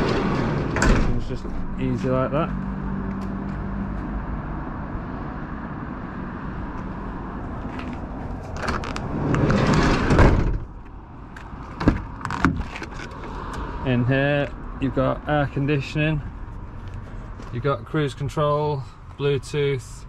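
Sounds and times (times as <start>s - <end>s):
door closing with loud bang: 0.0s - 1.7s, 9.4s - 10.7s
van sliding door rolling shut: 0.0s - 1.8s, 8.5s - 10.8s.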